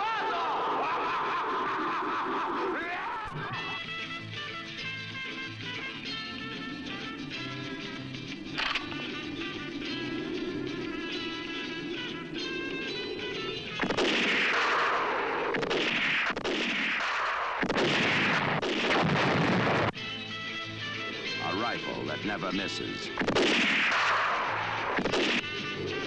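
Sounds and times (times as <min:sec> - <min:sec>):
person laughing: 0:00.6 - 0:03.8
music: 0:03.2 - 0:17.0, 0:17.7 - 0:26.0
gunfire and explosions: 0:13.8 - 0:20.0, 0:22.2 - 0:25.5.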